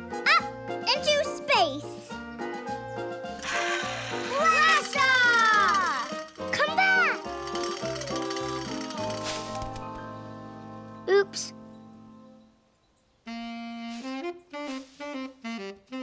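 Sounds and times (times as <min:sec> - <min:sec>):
cartoon background music: 0:00.0 - 0:12.4
toy propeller whoosh: 0:03.4 - 0:09.9.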